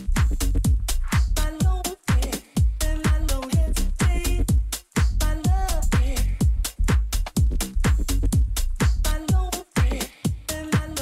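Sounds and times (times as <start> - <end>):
four-on-the-floor kick drum: 0.0 - 11.0
hi-hats: 0.0 - 11.0
house dance music: 0.0 - 11.0.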